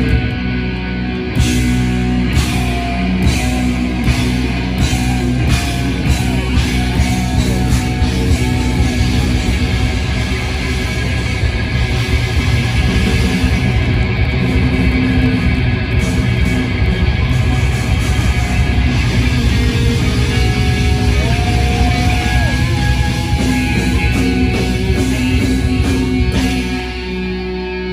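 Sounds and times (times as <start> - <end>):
bass guitar: 0.0 - 27.9
distorted electric guitars: 0.0 - 27.9
drums: 0.0 - 27.9.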